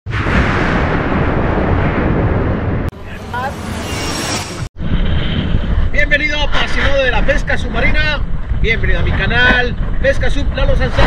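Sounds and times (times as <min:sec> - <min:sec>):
loud deep rumbling: 0:00.1 - 0:11.0
wind: 0:00.1 - 0:11.0.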